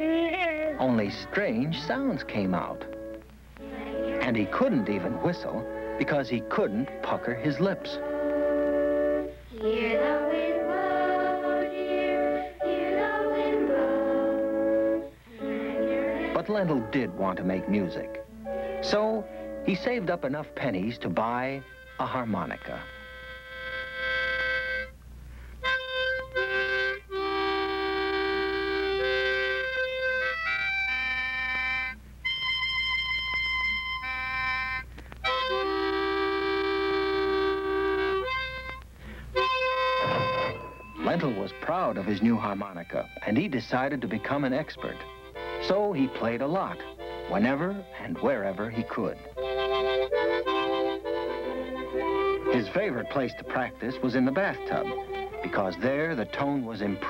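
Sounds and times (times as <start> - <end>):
harmonica chord: 0.0 - 57.0.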